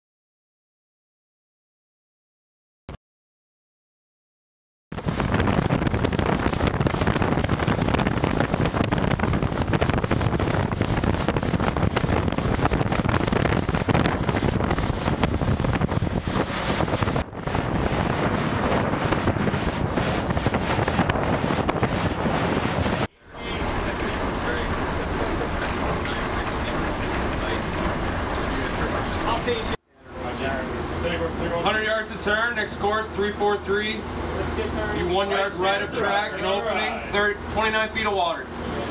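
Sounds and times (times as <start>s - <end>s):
steady quieter noise: 22.9s - 38.9s
ship crunching through ice: 23.2s - 29.8s.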